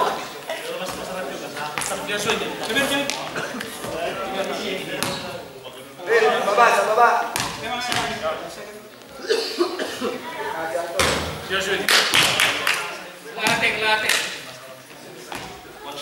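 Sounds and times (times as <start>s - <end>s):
men talking and calling: 0.0s - 16.0s.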